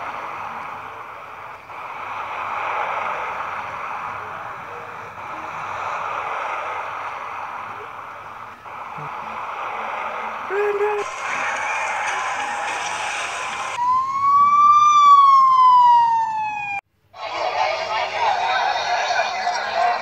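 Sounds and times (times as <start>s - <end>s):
steady noisy background: 0.0s - 13.8s, 16.9s - 20.0s
emergency siren tone: 0.0s - 16.8s.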